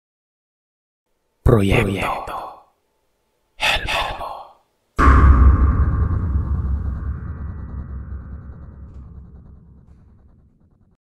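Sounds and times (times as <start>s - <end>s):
person whispering a word: 1.5s - 2.8s, 3.6s - 4.7s.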